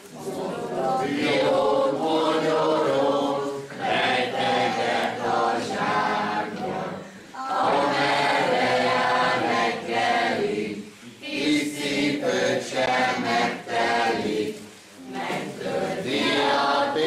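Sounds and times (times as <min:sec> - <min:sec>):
group of voices singing: 0:00.0 - 0:17.0.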